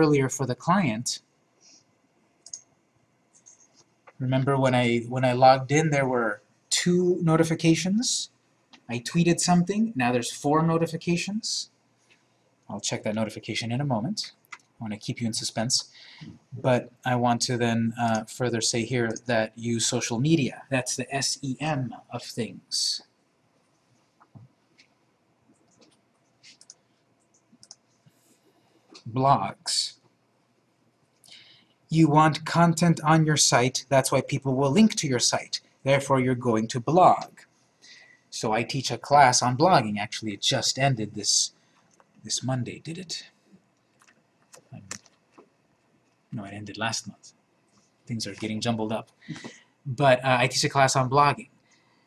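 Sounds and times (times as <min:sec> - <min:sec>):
computer mouse clicks: 0:03.3 - 0:04.2, 0:24.2 - 0:28.1.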